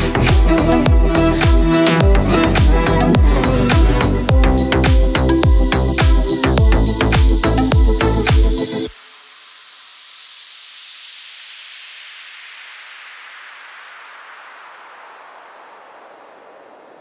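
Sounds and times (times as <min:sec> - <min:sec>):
white-noise downlifter sweep: 0:00.0 - 0:17.0.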